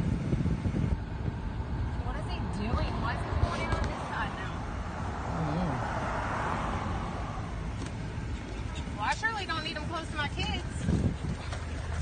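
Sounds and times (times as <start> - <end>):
car cabin rumble: 0.0 - 12.0
wind buffeting microphone: 0.0 - 12.0.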